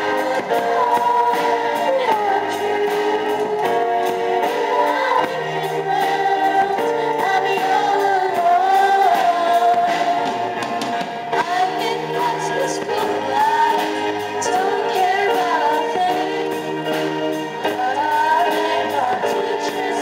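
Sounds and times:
children singing in chorus: 0.0s - 20.0s.

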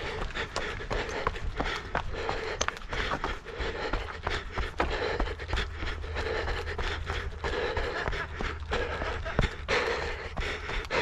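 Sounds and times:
quick footfalls on rough path: 0.0s - 11.0s
runner panting heavily: 0.0s - 11.0s.

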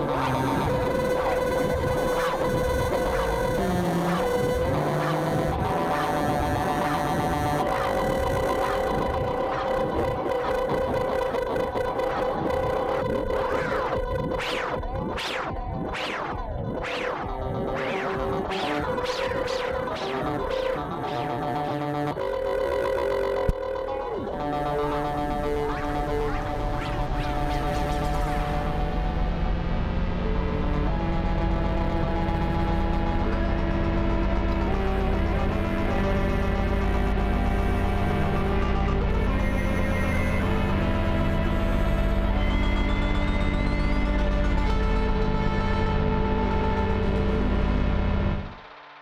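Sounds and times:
ambient violin and ukulele music: 30.3s - 47.6s.

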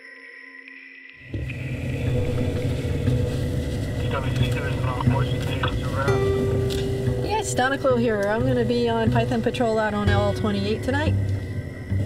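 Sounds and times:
faint sustained tones: 0.0s - 12.0s
deep low rumble: 1.3s - 12.0s.

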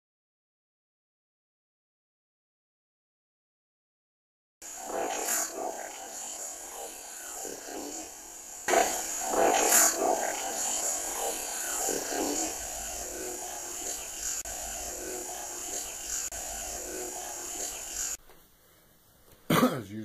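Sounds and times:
recorder hiss: 4.6s - 20.0s
man speaking: 19.5s - 20.0s.

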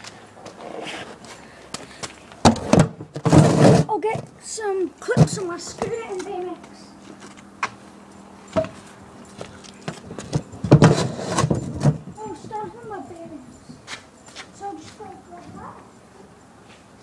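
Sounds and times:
scooter clattering on a ramp: 2.4s - 4.3s, 9.8s - 12.7s.

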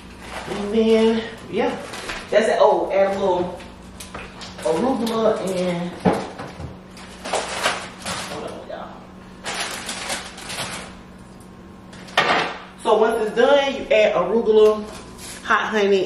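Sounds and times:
rustling leaves and packaging: 0.0s - 11.4s, 14.5s - 15.7s.

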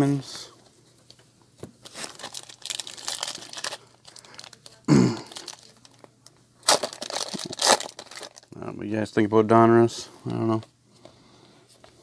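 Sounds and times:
wrapper tearing open: 1.8s - 6.0s, 6.6s - 8.5s
foil wrapper crinkling: 1.8s - 8.6s.

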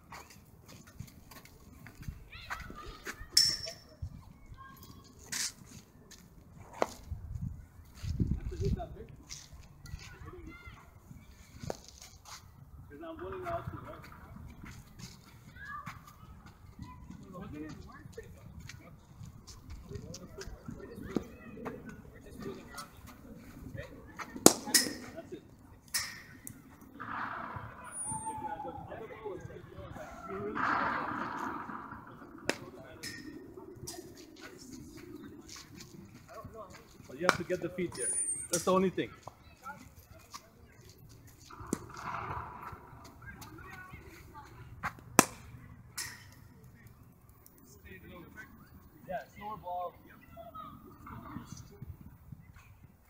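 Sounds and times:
distant voices: 0.0s - 53.0s
cricket bat striking ball: 24.4s - 25.2s, 45.2s - 45.5s.

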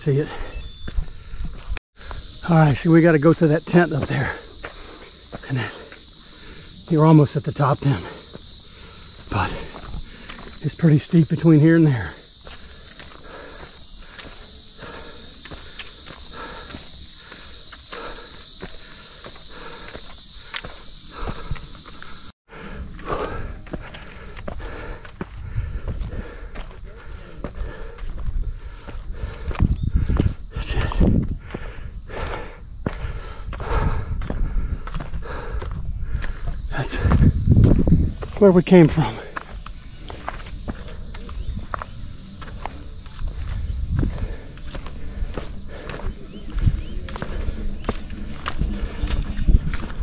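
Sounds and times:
high insect drone: 0.0s - 50.0s
footsteps on rock: 3.0s - 22.3s, 22.9s - 50.0s.

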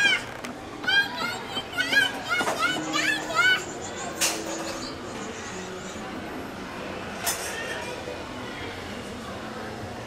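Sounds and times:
toddler babbling: 0.9s - 4.1s.

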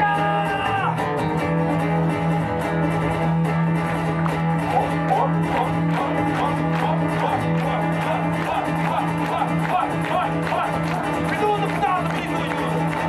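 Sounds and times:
strummed guitars: 0.0s - 13.0s.

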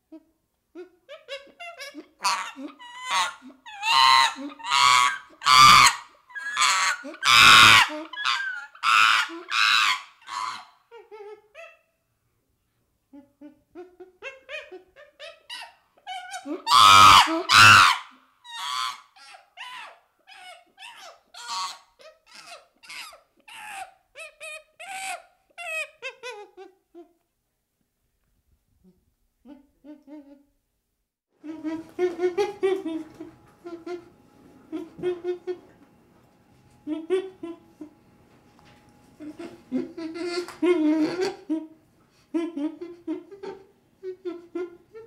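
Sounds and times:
chimpanzee squealing and hooting: 0.8s - 11.9s, 13.4s - 26.8s, 39.2s - 41.8s.

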